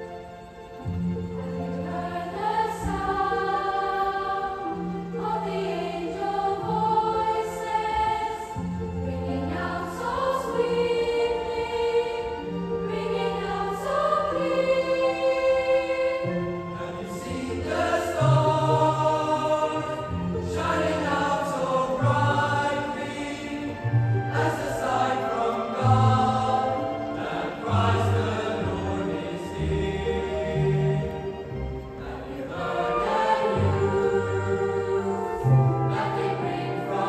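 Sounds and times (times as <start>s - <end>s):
orchestra holding low notes: 0.0s - 37.0s
children's choir singing: 1.6s - 37.0s.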